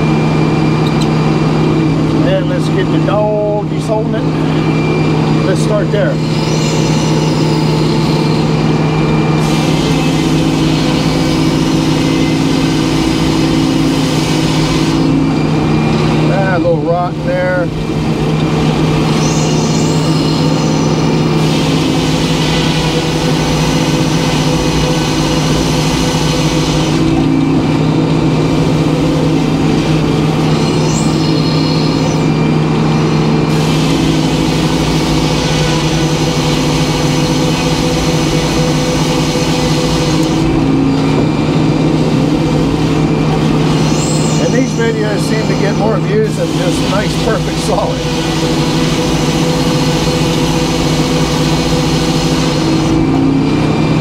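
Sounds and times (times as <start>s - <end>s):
wavering saw whine: 0.0s - 54.0s
circular saw cutting log: 5.4s - 8.7s, 9.4s - 15.2s, 18.4s - 27.3s, 28.6s - 40.6s, 42.1s - 53.1s.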